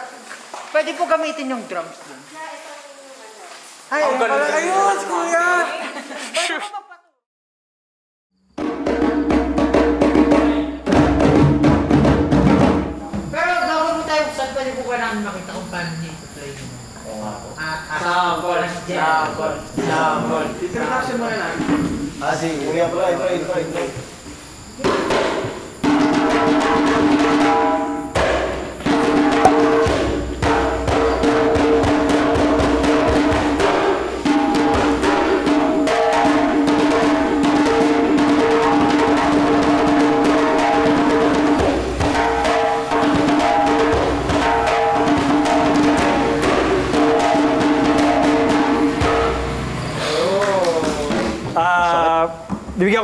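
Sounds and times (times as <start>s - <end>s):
djembe hand drum slaps: 8.6s - 13.4s, 24.8s - 51.6s.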